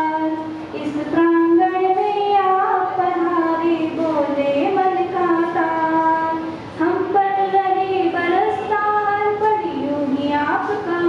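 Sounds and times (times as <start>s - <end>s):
girl singing into a microphone: 0.0s - 11.0s.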